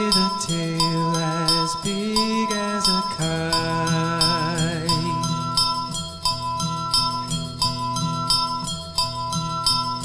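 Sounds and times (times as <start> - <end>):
bell-like plucked notes: 0.0 - 10.0.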